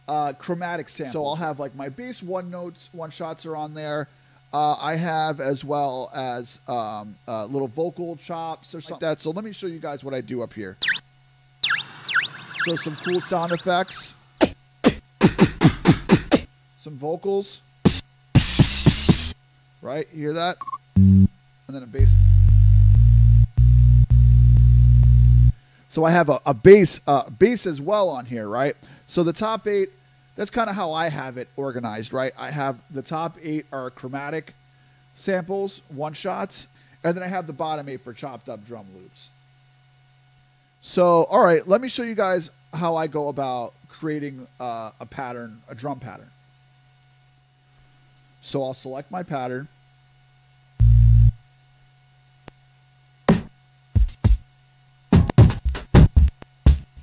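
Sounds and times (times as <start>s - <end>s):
faint electrical hum: 0.0s - 55.5s
deep bass notes from sampler: 20.6s - 21.3s, 22.0s - 25.6s, 50.8s - 51.4s.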